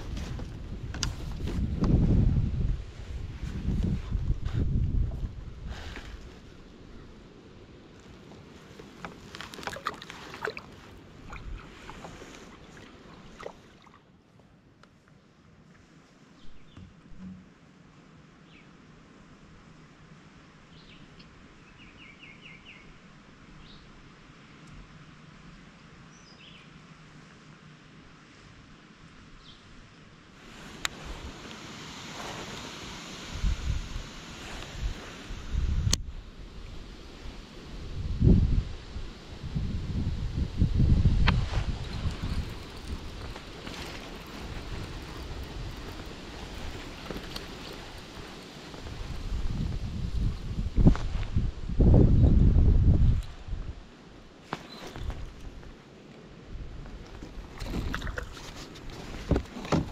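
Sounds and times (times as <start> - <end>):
wind buffeting microphone: 0.0 - 7.2, 33.2 - 53.8.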